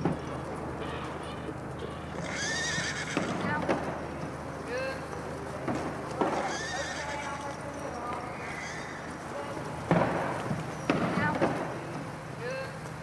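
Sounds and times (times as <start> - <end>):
horses trotting: 0.0 - 13.0
horses neighing: 0.2 - 3.6, 6.2 - 9.7.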